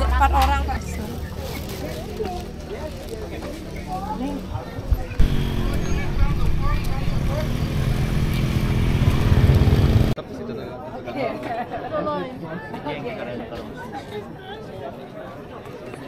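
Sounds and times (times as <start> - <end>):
people's voices: 0.0 - 16.0
vehicle engine running: 5.2 - 10.2.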